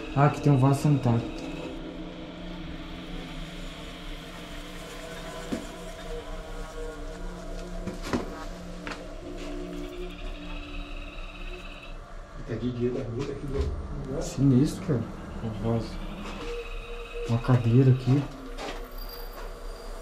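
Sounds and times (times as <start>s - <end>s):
low droning tones: 0.0s - 20.0s.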